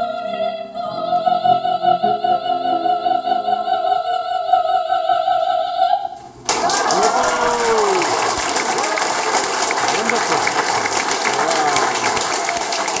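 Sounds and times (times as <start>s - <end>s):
audience applauding: 6.4s - 13.0s.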